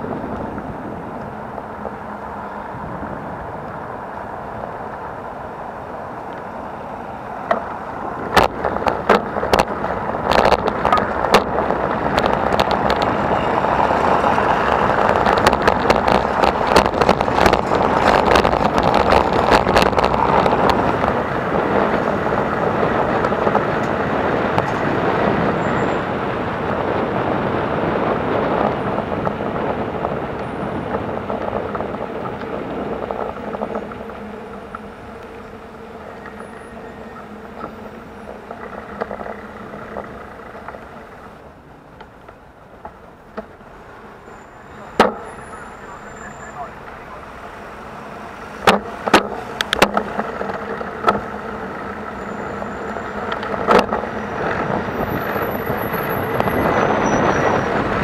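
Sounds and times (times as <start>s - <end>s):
wind rushing over microphone: 0.0s - 41.8s, 46.7s - 58.0s
car traffic: 0.0s - 58.0s
sharp clicks or knocks: 48.6s - 51.2s.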